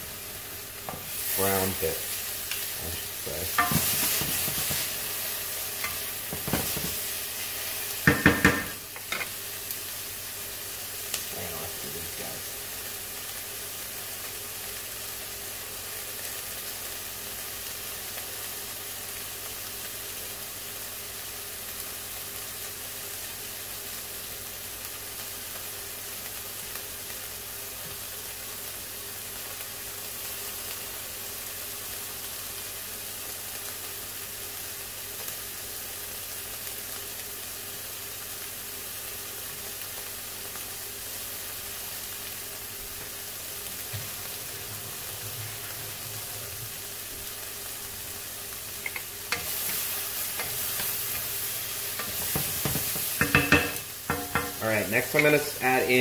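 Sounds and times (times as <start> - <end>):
vegetables sizzling in a pan: 0.0 - 56.0
wooden spoon scraping a pan: 3.5 - 9.3, 48.8 - 55.6.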